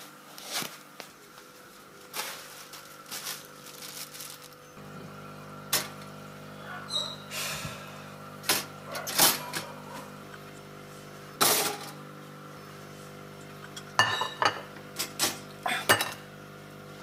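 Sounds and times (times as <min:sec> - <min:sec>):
steady hum: 0:00.0 - 0:17.0.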